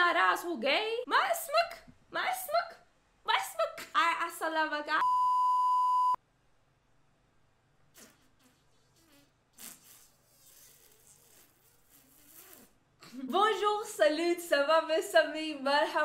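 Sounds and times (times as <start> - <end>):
high-pitched test tone beep: 5.0 - 6.2.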